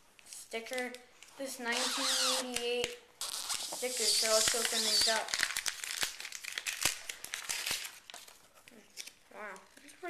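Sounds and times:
wrapper crinkling and tearing: 1.8 - 9.9.

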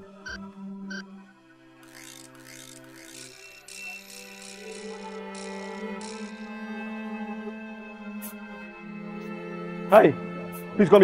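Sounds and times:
film score sustained notes: 0.0 - 11.0.

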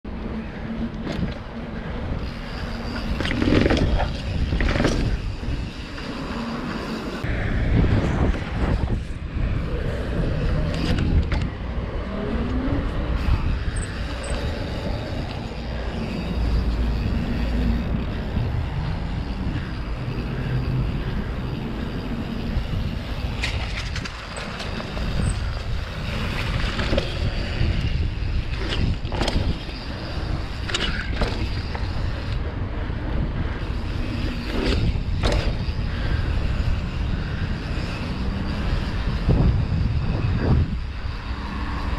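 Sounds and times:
wind rushing over microphone: 0.0 - 41.9
bike tyres rolling on pavement: 0.1 - 41.9.

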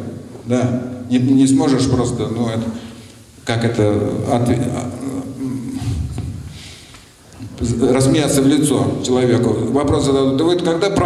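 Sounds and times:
man murmuring: 4.8 - 6.2.

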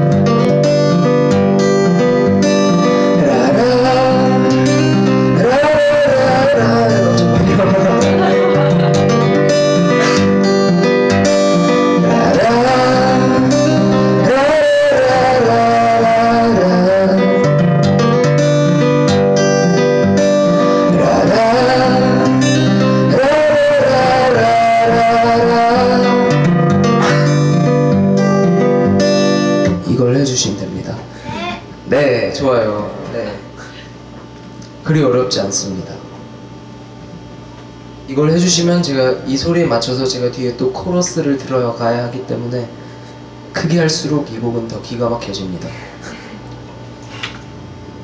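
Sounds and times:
acoustic guitar strumming: 0.0 - 34.4
person singing: 3.1 - 17.6, 20.8 - 26.4.

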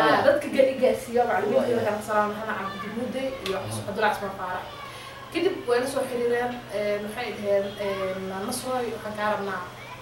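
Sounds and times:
woman speaking: 0.0 - 9.8.

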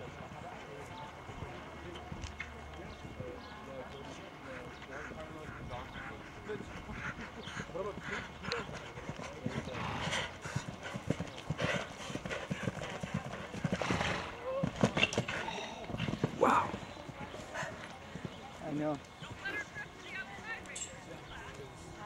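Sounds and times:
horse hoofbeats on grass: 4.5 - 20.6.

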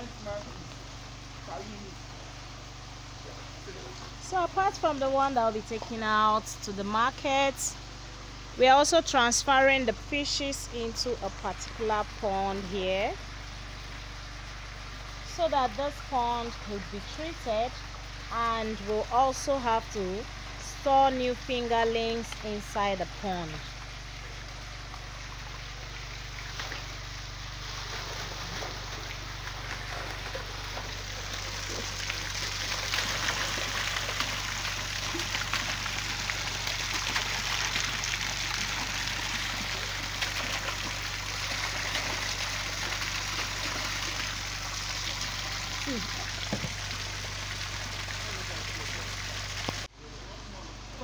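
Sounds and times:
steady low hum: 0.0 - 51.0
water splashing into pond: 11.0 - 49.9.

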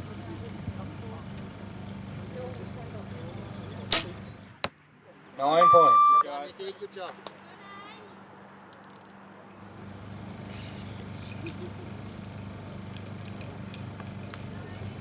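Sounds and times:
faint voices: 0.0 - 5.8, 10.4 - 15.0
loudspeaker announcement: 5.6 - 6.2.

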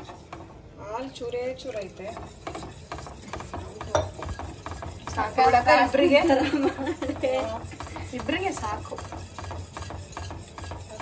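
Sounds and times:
whisk beating in metal pan: 0.0 - 11.0.

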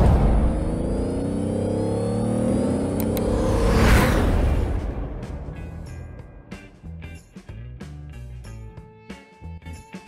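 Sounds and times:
car engine revving: 0.0 - 6.9
mouse clicks: 3.0 - 3.3
background music: 4.6 - 10.0.

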